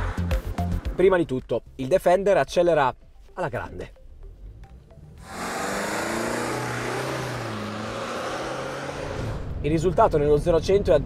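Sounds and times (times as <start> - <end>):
diesel engine accelerating hard: 4.5 - 9.6.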